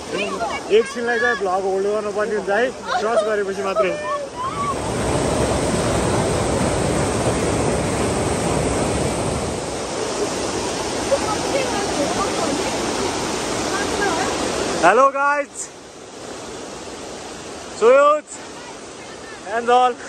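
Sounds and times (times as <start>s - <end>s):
stream rushing over boulders: 0.0s - 20.0s.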